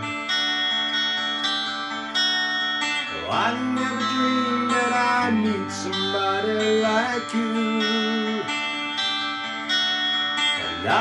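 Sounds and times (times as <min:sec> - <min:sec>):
electric guitar chords strummed: 0:00.0 - 0:11.0.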